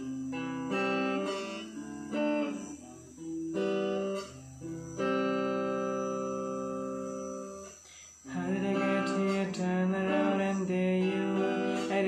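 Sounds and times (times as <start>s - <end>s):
electric guitar: 0.0s - 12.0s
man singing pop song: 8.3s - 12.0s.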